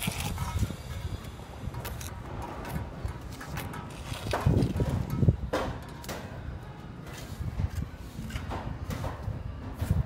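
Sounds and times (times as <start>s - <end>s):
trowel scraping wet mortar: 0.0s - 0.8s.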